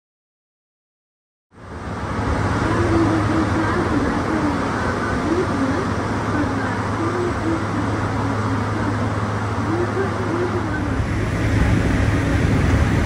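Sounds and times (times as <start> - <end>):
constant low hum: 1.6 - 13.0
train running rumble: 1.6 - 13.0.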